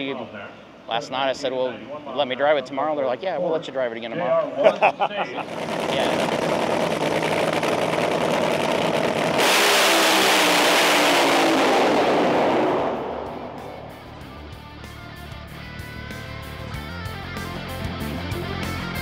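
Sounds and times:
race car engine at full throttle: 5.4 - 19.0
music with steady beat: 13.6 - 19.0.

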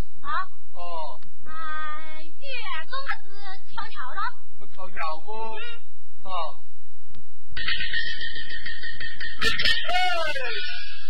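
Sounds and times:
high stylized singing voice: 7.6 - 10.9.

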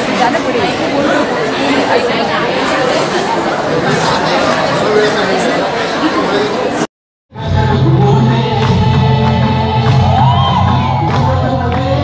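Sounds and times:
indistinct chatter: 0.0 - 6.9.

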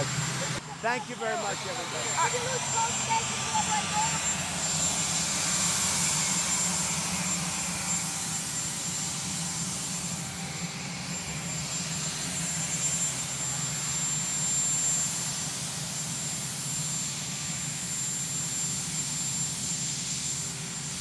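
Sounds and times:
helicopter turbine engines running: 0.0 - 21.0.

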